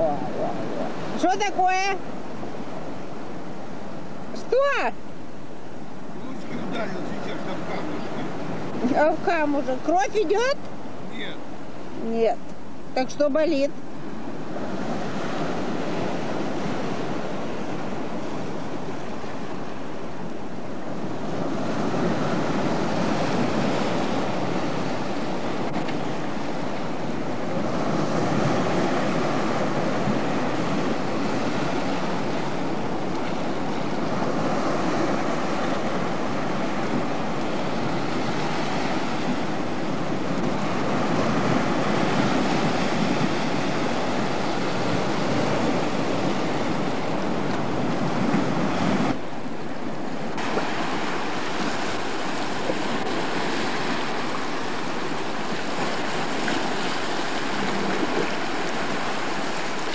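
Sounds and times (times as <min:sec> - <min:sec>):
sea surf on rocky shore: 0:00.0 - 0:59.9.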